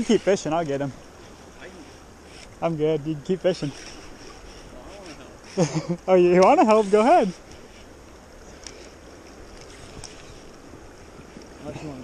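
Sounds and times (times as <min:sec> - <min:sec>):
flowing river: 0:00.0 - 0:12.0
wind on microphone: 0:06.8 - 0:12.0
faint clicks: 0:08.5 - 0:10.6.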